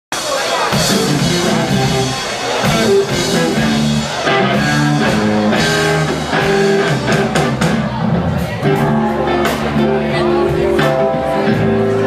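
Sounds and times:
rock band playing: 0:00.1 - 0:12.0.

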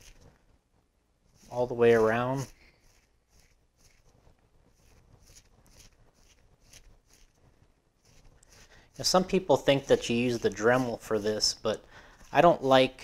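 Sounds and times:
scrubbing pad on rubber tire: 0:00.0 - 0:00.3, 0:01.2 - 0:13.0.

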